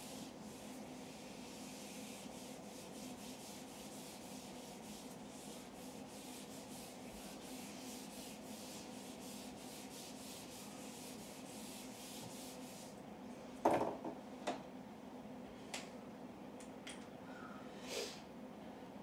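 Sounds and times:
eraser wiping whiteboard: 0:00.0 - 0:13.0.

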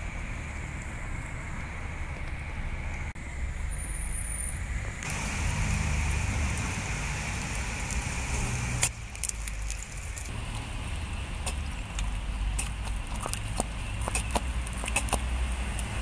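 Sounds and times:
steady low rumble: 0:00.0 - 0:16.0
water squirts and drips clicking: 0:05.0 - 0:16.0.

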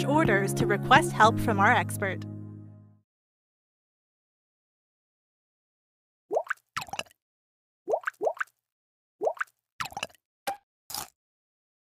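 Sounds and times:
bubbly plops: 0:06.3 - 0:07.2, 0:07.9 - 0:08.5, 0:09.2 - 0:10.2.

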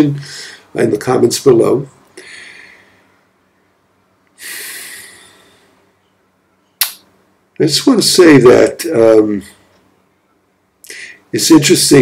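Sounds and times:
man breathing: 0:00.2 - 0:00.7, 0:02.2 - 0:03.2, 0:04.4 - 0:05.9
mouth sound: 0:06.8 - 0:07.1.

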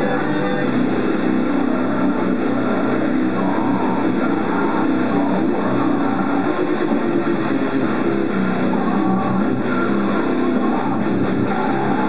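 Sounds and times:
distorted electric guitar riff: 0:00.0 - 0:12.0.

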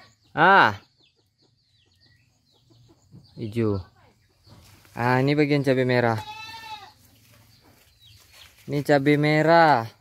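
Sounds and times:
goat bleating: 0:06.0 - 0:07.1.

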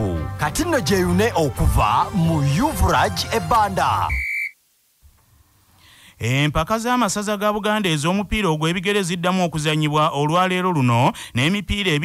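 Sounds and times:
high-pitched electronic tone: 0:04.0 - 0:04.6.

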